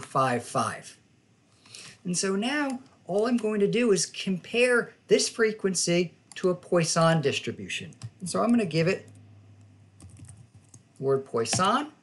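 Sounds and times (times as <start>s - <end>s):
keyboard typing: 7.9s - 11.7s.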